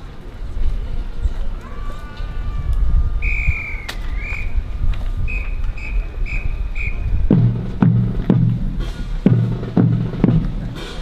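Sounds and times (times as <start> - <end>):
wind rumbling on microphone: 0.0 - 11.0
high whistle-like tone: 3.2 - 4.6, 5.2 - 7.2.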